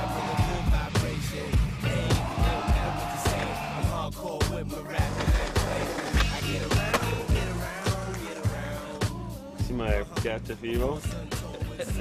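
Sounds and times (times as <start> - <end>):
music with steady beat: 0.0 - 12.0
skateboard wheels rolling on concrete: 5.0 - 9.0.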